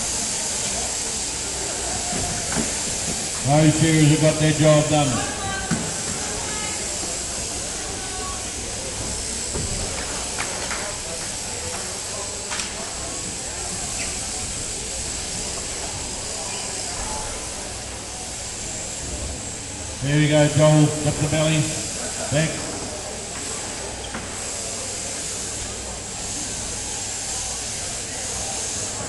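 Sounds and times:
electric shears hissing: 0.0s - 29.0s.

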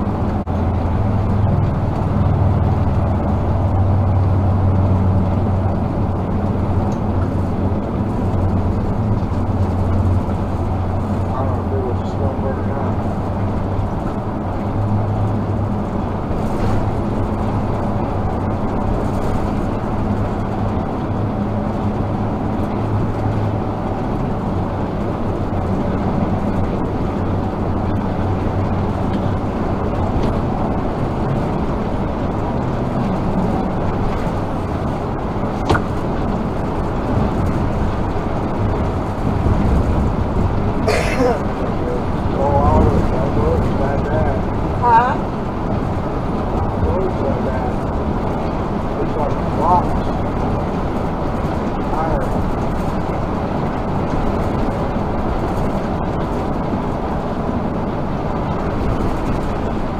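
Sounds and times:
low engine drone: 0.0s - 59.9s
road and tyre noise: 0.0s - 59.9s.

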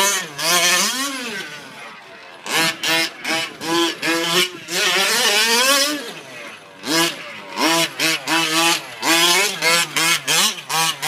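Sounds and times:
rc truck engine revving: 0.0s - 11.0s.

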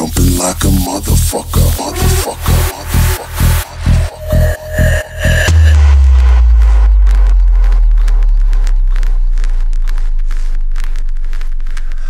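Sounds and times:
deep sub-bass note: 1.5s - 12.0s.

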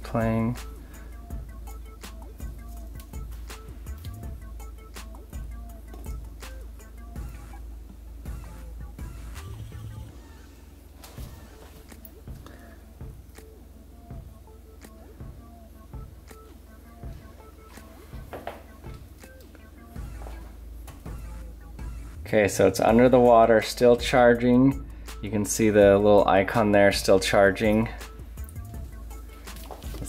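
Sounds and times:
low steady hum: 0.0s - 30.0s
music from phone speaker underwater: 0.9s - 22.3s, 28.2s - 30.0s.

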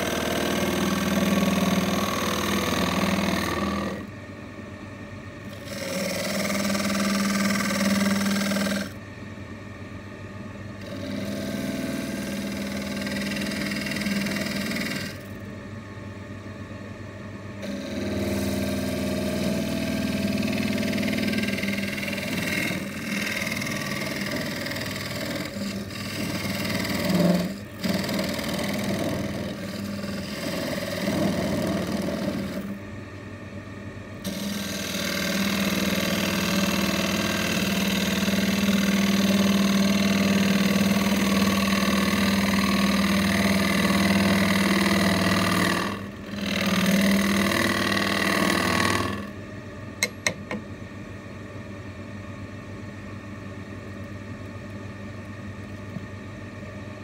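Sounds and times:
gouge scraping wood: 0.0s - 4.0s, 5.6s - 8.9s, 10.8s - 15.2s, 17.6s - 32.7s, 34.3s - 49.2s
wood lathe humming: 0.0s - 4.2s, 5.5s - 9.0s, 10.8s - 15.4s, 17.6s - 32.8s, 34.2s - 49.4s.

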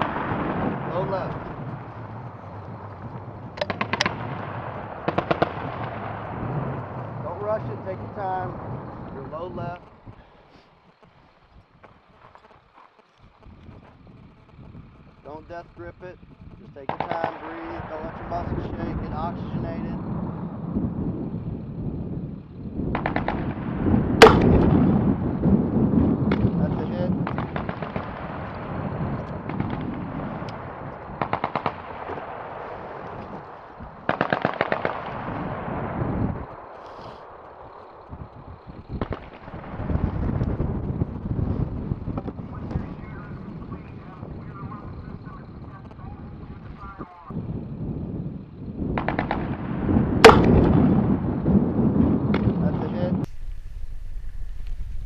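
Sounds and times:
low rumbling: 0.0s - 55.0s
grenade launcher firing: 3.6s - 7.0s, 23.0s - 25.0s, 34.1s - 35.8s, 49.0s - 51.0s
rapid automatic gunfire: 3.6s - 10.1s, 16.9s - 18.8s, 22.9s - 25.2s, 26.2s - 35.9s, 39.0s - 40.2s, 49.0s - 50.9s.

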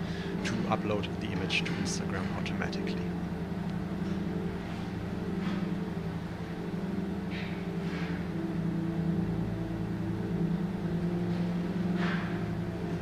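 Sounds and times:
low droning hum: 0.0s - 13.0s.

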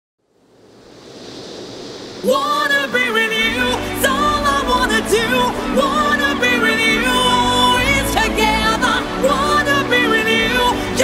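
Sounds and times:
noise swell of dance-pop song: 0.2s - 11.0s.

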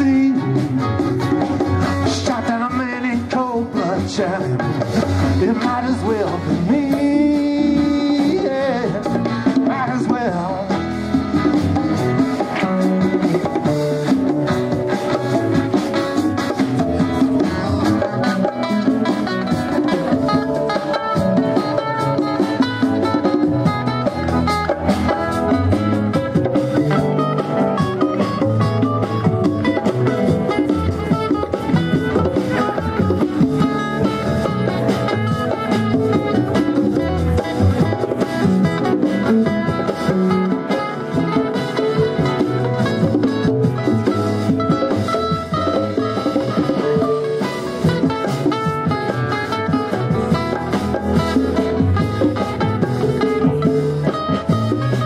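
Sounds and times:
bass guitar: 0.0s - 55.0s
drum kit beat: 0.0s - 55.0s
electric guitar: 0.0s - 55.0s.

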